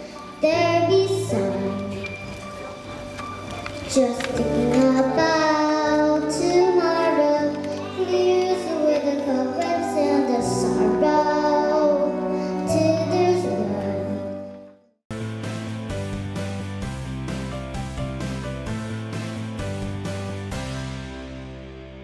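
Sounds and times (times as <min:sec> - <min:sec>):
instrumental backing track: 0:00.0 - 0:22.0
girl singing into microphone: 0:00.4 - 0:02.1, 0:03.8 - 0:14.6.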